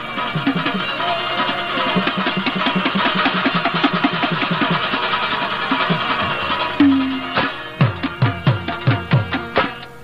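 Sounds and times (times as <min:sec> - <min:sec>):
plucked string instrument: 0:00.0 - 0:10.0.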